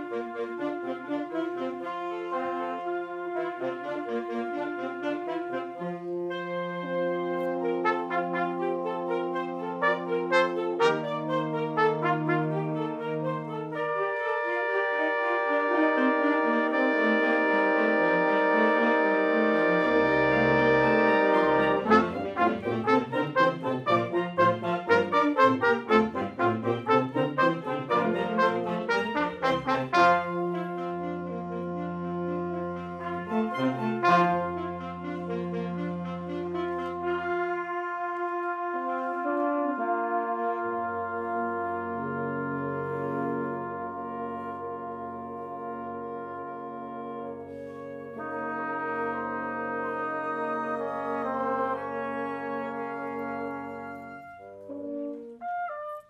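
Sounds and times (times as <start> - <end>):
wind ensemble playing: 0.0 - 56.0.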